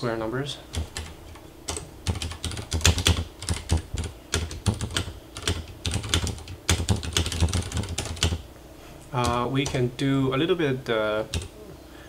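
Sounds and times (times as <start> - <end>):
typing on computer keyboard: 0.7 - 8.4, 9.2 - 9.9, 11.2 - 11.5.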